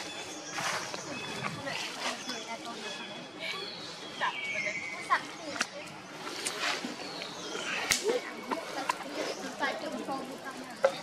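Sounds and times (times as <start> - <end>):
sharp snap: 7.8 - 8.2.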